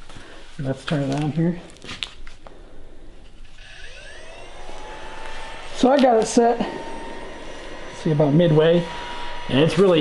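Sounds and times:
blower fan whine: 2.4s - 10.0s.

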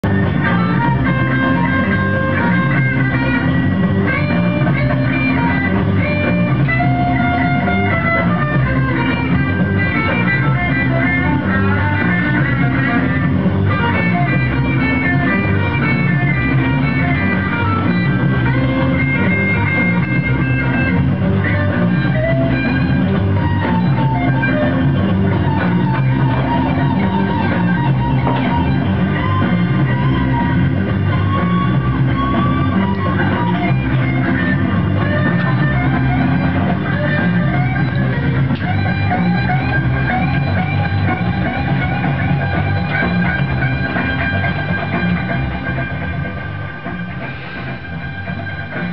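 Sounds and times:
rock music with electric guitar: 0.0s - 48.9s.

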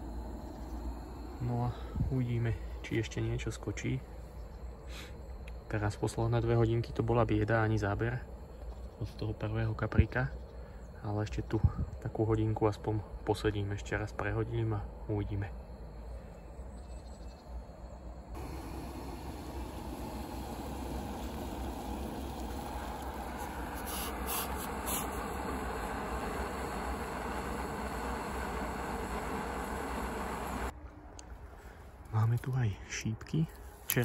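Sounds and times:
camping stove hissing: 0.0s - 11.0s, 18.3s - 30.8s.

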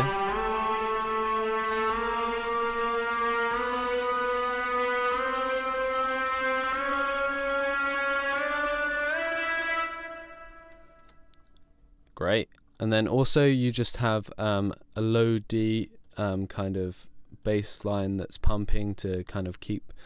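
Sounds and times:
synth lead rising note: 0.0s - 10.8s.

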